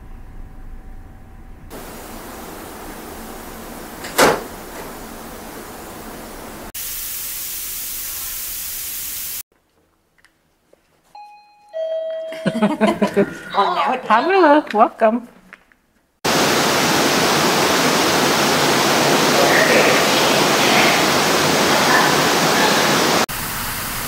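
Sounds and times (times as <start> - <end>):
flat static-like noise: 1.7 - 9.4, 16.3 - 23.8
hiss and rushing noise: 1.7 - 9.4, 16.2 - 24.0
two-note ding-dong chime: 11.2 - 12.7.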